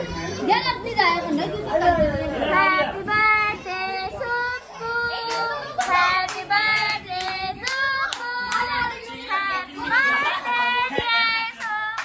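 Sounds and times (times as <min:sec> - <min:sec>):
family singing birthday song: 0:00.0 - 0:12.0.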